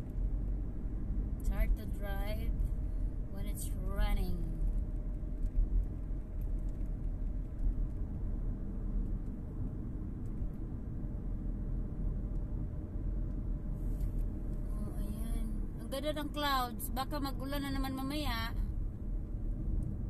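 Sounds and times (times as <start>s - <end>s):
faint steady hum: 0.0s - 20.0s
road and engine rumble in car: 0.0s - 20.0s.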